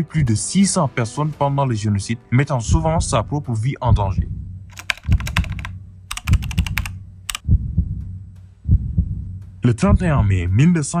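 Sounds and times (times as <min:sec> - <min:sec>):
deep low thumps: 0:02.7 - 0:10.5
steady low hum: 0:04.1 - 0:09.6
keystroke clicks: 0:04.7 - 0:07.4.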